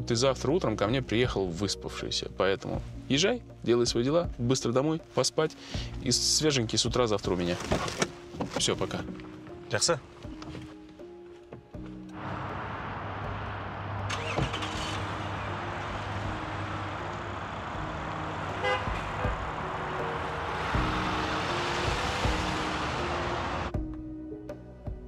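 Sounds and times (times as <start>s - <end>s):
quiet background music: 0.0s - 25.0s
car passing: 12.1s - 23.7s
car horn toot: 18.4s - 19.7s.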